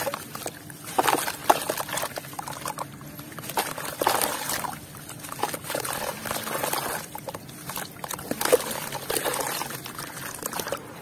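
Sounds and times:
water dripping and splashing: 0.0s - 10.8s
hands squelching wet cement mix: 0.0s - 11.0s.

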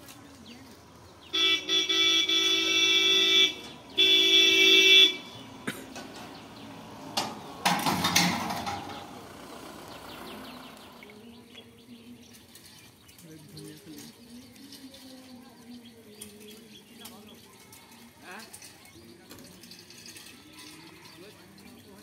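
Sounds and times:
horn blasts: 1.3s - 5.6s.

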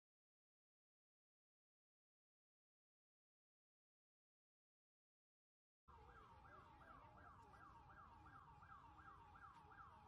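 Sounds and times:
siren yelping: 5.9s - 10.0s.

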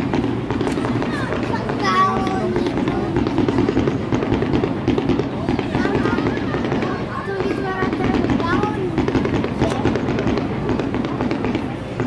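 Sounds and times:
fireworks crackling and banging: 0.0s - 12.0s.

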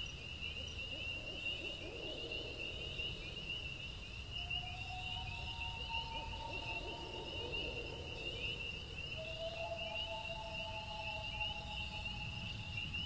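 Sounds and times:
insects chirring: 0.0s - 13.0s.

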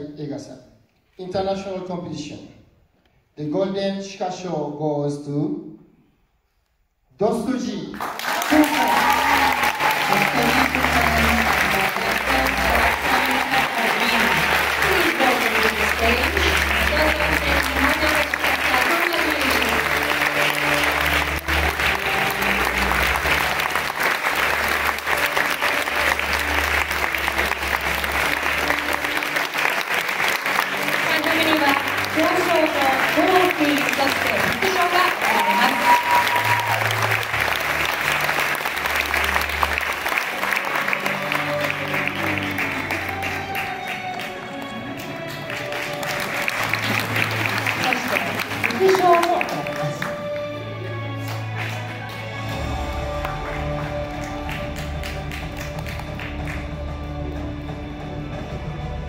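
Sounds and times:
audience applauding: 7.9s - 57.7s.

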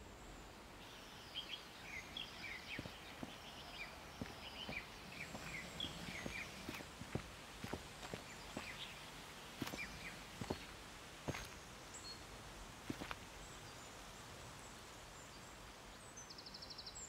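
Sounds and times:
small birds chirping: 0.0s - 17.0s
footsteps on dirt path: 1.6s - 13.8s.

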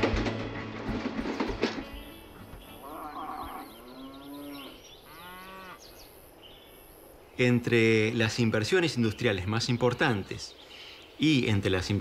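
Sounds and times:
cattle mooing: 2.8s - 5.8s.

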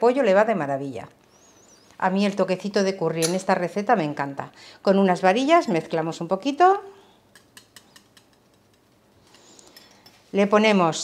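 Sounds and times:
whisk clicking against glass bowl: 7.3s - 8.9s.

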